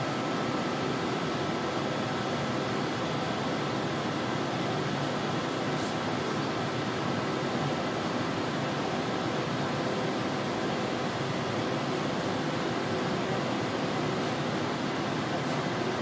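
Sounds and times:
ventilation hiss and hum: 0.0s - 16.0s.

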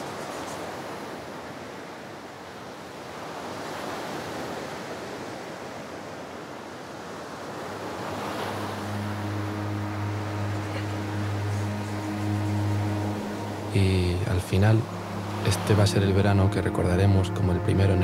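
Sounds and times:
ocean surf breaking on beach: 0.0s - 16.0s
low held musical note: 7.8s - 18.0s.

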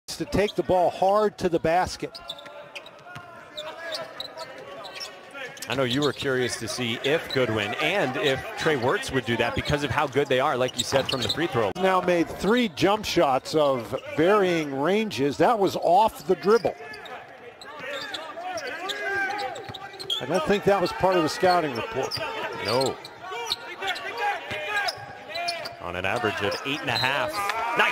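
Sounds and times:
low court noise: 0.1s - 27.9s
shoe squeaks: 2.1s - 7.8s, 10.5s - 11.7s, 16.3s - 27.4s.

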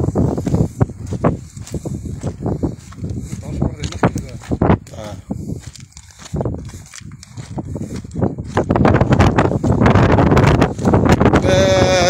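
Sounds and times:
footsteps on gravel: 0.0s - 12.0s
wind buffeting microphone: 0.0s - 12.0s.

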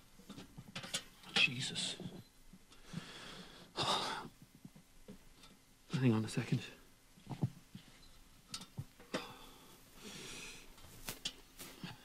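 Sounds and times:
sharp clicks and knocks: 0.2s - 1.5s
short rustle: 10.8s - 12.0s.

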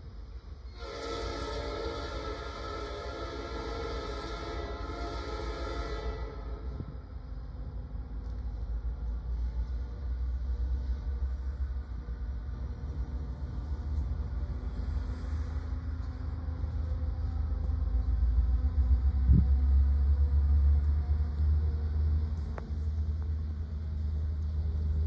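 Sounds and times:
diesel locomotives rumbling: 0.0s - 25.0s.

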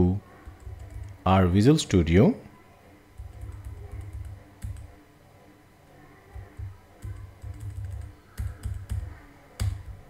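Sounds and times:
keyboard and mouse clicks: 6.4s - 10.0s.

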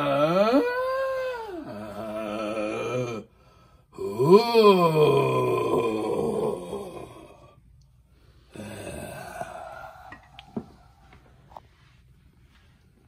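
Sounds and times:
person wailing spookily: 0.0s - 3.3s, 4.0s - 7.5s, 8.6s - 10.3s.

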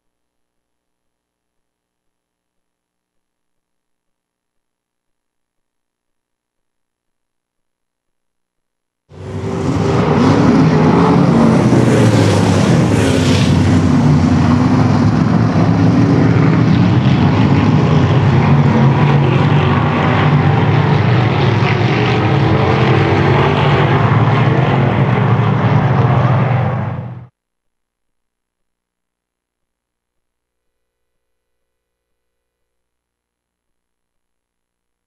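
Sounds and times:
racing car engines passing: 9.1s - 27.3s.

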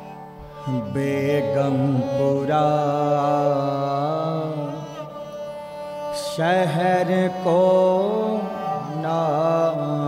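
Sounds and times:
harmonium drone: 0.0s - 10.0s
man singing: 0.0s - 10.0s.

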